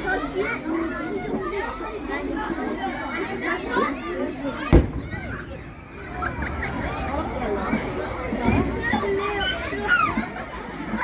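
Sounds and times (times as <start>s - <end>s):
children shouting: 0.0s - 11.0s
cannon shot boom: 4.7s - 8.7s.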